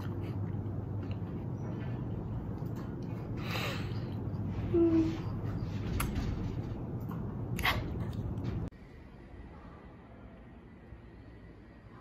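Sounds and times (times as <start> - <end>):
room background noise: 0.0 - 12.0.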